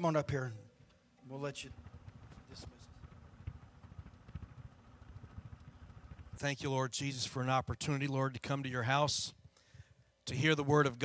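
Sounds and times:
microphone handling rumble: 0:01.6 - 0:06.7
microphone handling knocks: 0:01.7 - 0:06.4.

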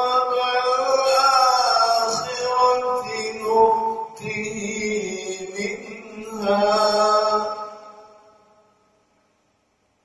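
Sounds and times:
man chanting through microphone: 0:00.0 - 0:08.6.

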